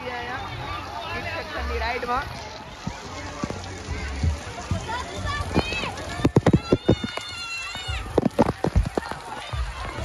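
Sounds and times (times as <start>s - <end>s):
wet feet slapping on steps: 2.8s - 10.0s.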